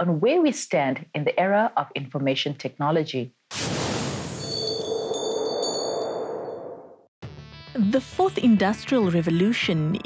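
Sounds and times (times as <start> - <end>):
high chiming tones: 4.4 - 7.0.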